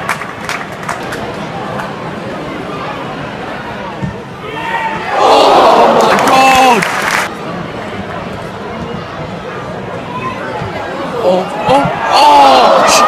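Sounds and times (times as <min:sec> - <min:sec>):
crowd voices: 0:00.0 - 0:13.0
crowd shouting together: 0:04.5 - 0:06.8, 0:11.4 - 0:13.0.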